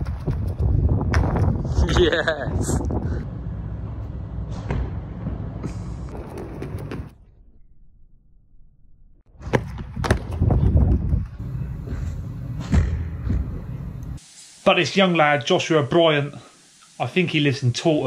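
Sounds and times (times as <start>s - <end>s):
wind buffeting microphone: 0.0s - 3.3s, 9.7s - 12.4s.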